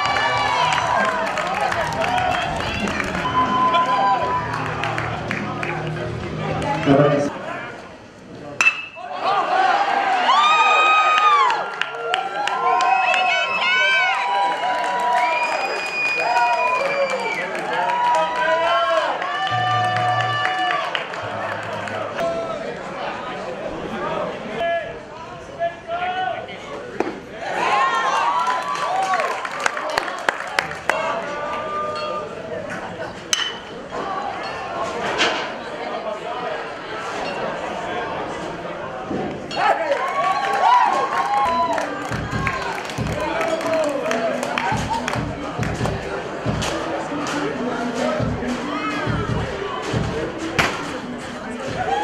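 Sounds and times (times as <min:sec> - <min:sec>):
spectators shouting and cheering: 0:00.0 - 0:52.0
metal bat ping: 0:08.6 - 0:09.0.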